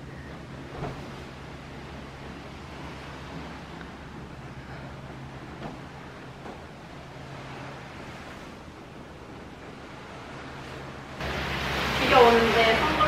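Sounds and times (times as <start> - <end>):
sea noise: 0.0 - 13.0
wind: 0.0 - 13.0.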